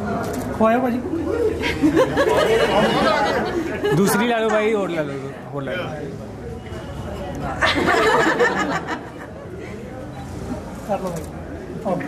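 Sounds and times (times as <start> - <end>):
overlapping chatter of people: 0.0 - 12.0.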